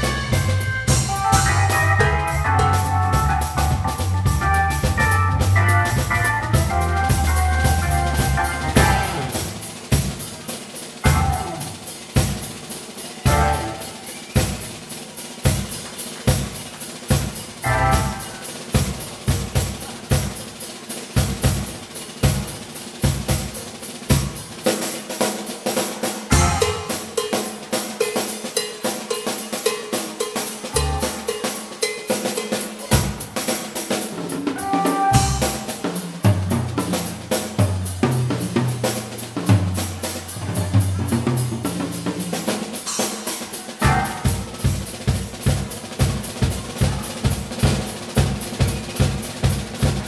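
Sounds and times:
keyboard bass and chords: 0.0s - 9.4s, 11.0s - 11.8s, 13.3s - 13.8s, 17.6s - 18.4s, 26.3s - 26.9s, 30.8s - 31.2s, 34.6s - 35.6s, 43.8s - 44.5s
drum and cymbal accents: 0.0s - 50.0s.

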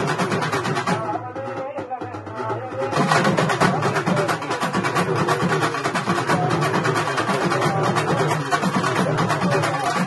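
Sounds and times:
hourglass drums fast rhythm: 0.0s - 10.0s.

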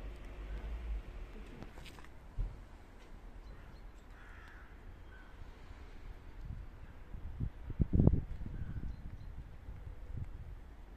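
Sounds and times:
harsh bird caw: 3.5s - 5.5s.

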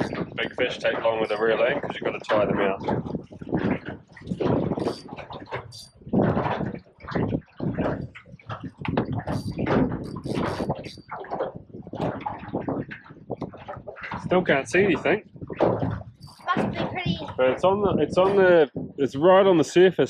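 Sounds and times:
water slapping boat hull: 0.0s - 19.9s.

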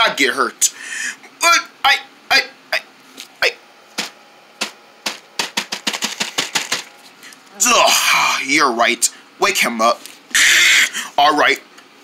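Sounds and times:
light taps on plastic sheeting: 4.0s - 6.9s.

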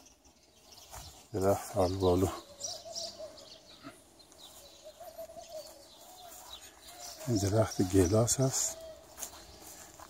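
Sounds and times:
faint birds chirping: 0.0s - 10.0s.

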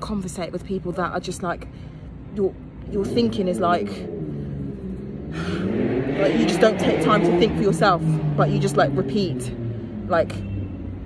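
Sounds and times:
vehicle engine droning: 1.2s - 11.0s.

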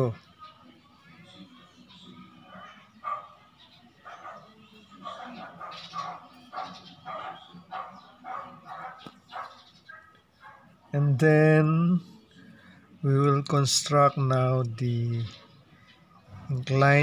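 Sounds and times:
dog barking: 2.5s - 10.8s.

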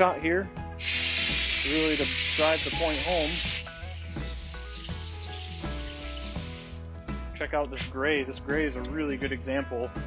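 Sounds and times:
background music sustained notes: 0.0s - 10.0s
water spray hiss: 0.8s - 6.8s.

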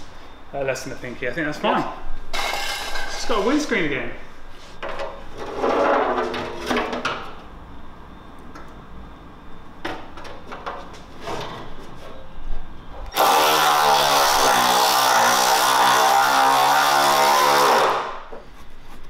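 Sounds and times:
handheld power tool motor running: 13.1s - 18.1s.

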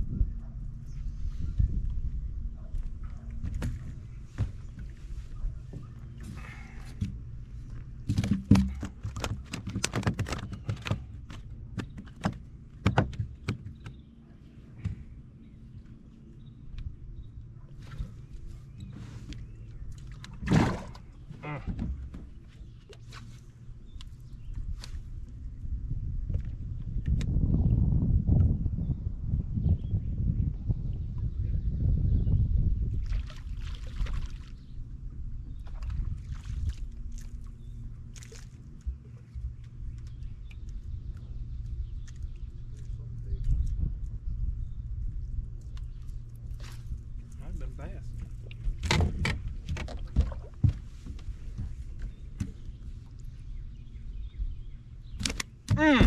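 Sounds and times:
low rumble: 0.0s - 9.1s, 23.5s - 56.0s
water sloshing against boat hull: 1.5s - 25.5s, 33.0s - 44.2s, 45.4s - 56.0s
sharp knocks and clicks: 8.1s - 14.0s.

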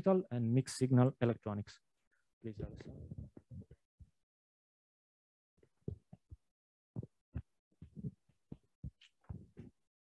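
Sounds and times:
microphone handling thumps: 2.6s - 3.8s, 5.8s - 9.8s.

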